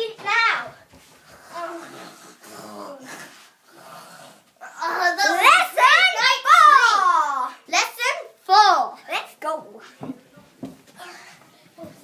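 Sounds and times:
soft thumps: 0:10.0 - 0:11.0.

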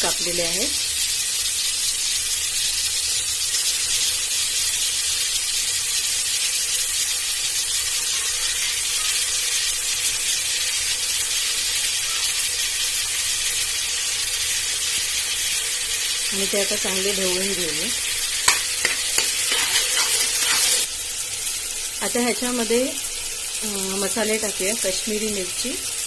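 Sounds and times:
onions and tomatoes sizzling: 0:00.0 - 0:26.0.

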